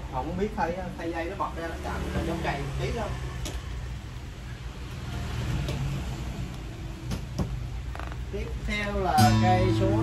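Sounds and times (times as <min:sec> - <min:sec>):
guitars knocking: 0:09.2 - 0:10.0.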